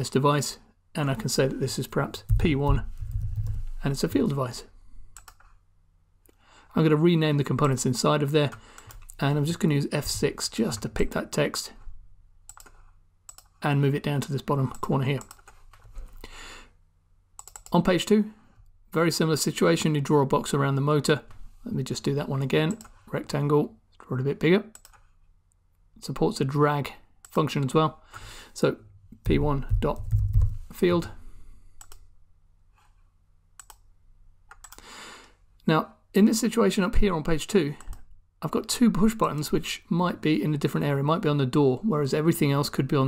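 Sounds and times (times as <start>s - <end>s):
keyboard and mouse clicks: 2.2s - 4.3s, 5.2s - 5.6s, 12.5s - 13.6s, 14.7s - 15.9s, 17.4s - 17.8s, 24.7s - 25.1s, 29.2s - 30.6s, 31.8s - 32.0s, 33.6s - 33.9s, 34.5s - 34.8s.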